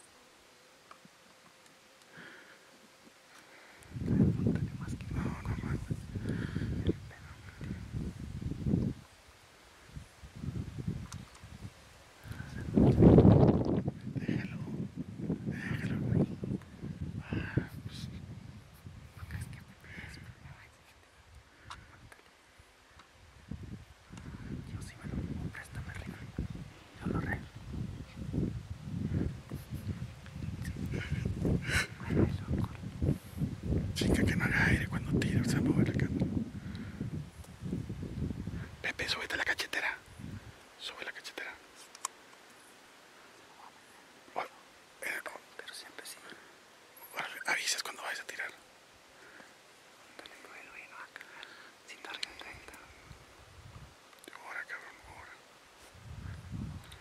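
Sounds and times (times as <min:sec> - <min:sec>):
low rumbling microphone noise: 0:03.2 - 0:41.6, 0:50.1 - 0:57.0
people whispering: 0:03.3 - 0:08.1, 0:12.2 - 0:14.8, 0:15.4 - 0:16.6, 0:17.2 - 0:18.2, 0:19.1 - 0:22.3, 0:24.2 - 0:27.5, 0:29.1 - 0:32.9, 0:34.0 - 0:36.2, 0:38.5 - 0:40.1, 0:40.8 - 0:42.0, 0:43.6 - 0:48.6, 0:50.1 - 0:53.0, 0:54.2 - 0:55.4.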